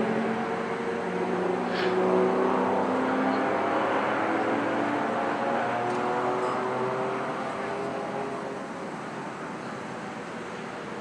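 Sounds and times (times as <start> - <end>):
go-kart engines racing: 0.0 - 11.0.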